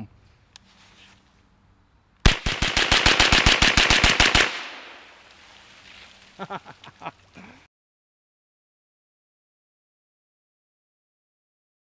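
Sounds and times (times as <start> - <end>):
rapid gunfire: 2.3 - 5.0
gunshot echo: 2.3 - 5.2.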